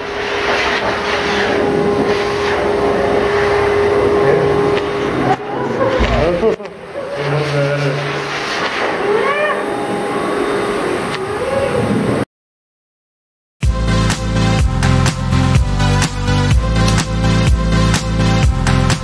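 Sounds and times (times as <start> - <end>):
grooming dryer blowing air: 0.0 - 6.0.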